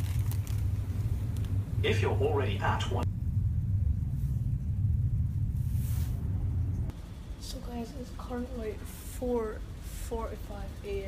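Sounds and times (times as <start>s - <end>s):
ship engines rumbling: 0.0s - 11.0s.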